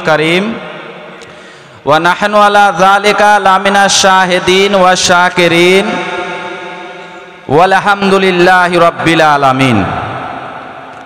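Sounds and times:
man chanting over loudspeaker: 0.0s - 1.1s, 1.8s - 10.8s.

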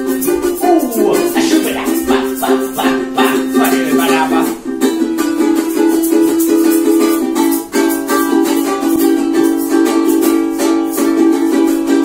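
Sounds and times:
ukulele strumming: 0.0s - 12.0s.

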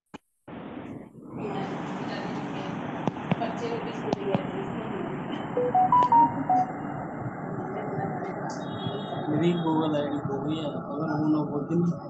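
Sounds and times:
electronic beeps stepping down: 5.6s - 6.8s.

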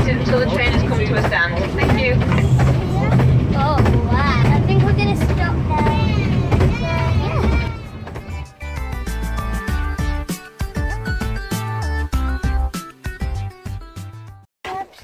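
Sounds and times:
people's voices: 0.0s - 8.5s
railway carriage rumble: 0.0s - 9.7s
background music: 5.8s - 14.4s.

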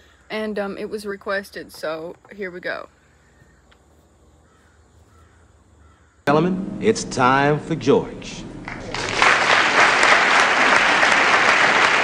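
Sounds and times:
faint bird calls: 2.3s - 6.3s
low steady hum: 6.3s - 9.6s.

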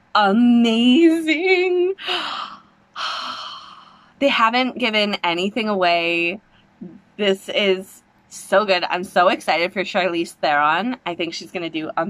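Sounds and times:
woman breathing: 2.0s - 4.2s.

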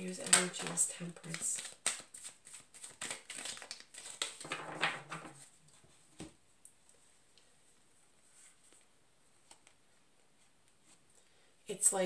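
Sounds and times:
cards shuffling: 0.1s - 5.5s.

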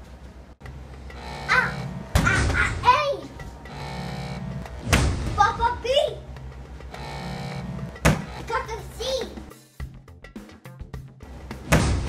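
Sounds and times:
background music: 0.1s - 12.0s
sudden impact: 4.8s - 5.4s.

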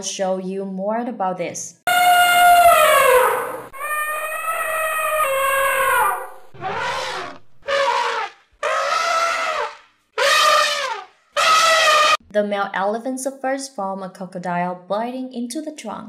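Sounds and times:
elephants trumpeting: 1.9s - 12.2s.

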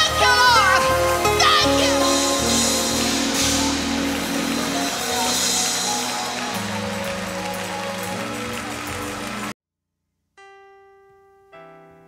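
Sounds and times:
sustained keyboard chords: 0.0s - 9.5s
choir and congregation singing: 2.2s - 9.5s.

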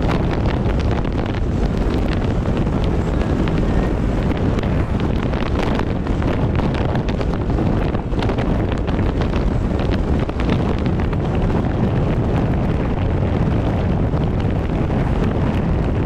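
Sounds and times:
microphone crackles: 0.0s - 16.0s
wind and road noise: 0.0s - 16.0s.

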